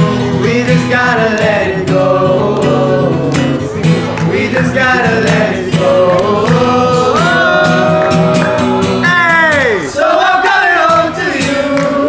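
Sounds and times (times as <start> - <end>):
acoustic guitar strumming: 0.0 - 12.0
young men singing together: 0.0 - 12.0.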